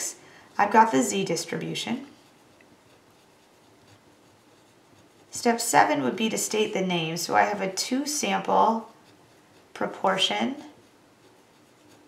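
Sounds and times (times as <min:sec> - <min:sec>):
pen scratching on paper: 0:00.0 - 0:12.0.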